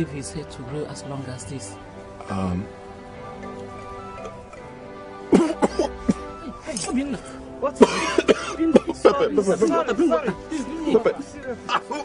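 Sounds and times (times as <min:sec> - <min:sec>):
film music with sustained tones: 0:00.0 - 0:12.0
man coughing: 0:05.3 - 0:06.3, 0:07.8 - 0:09.3.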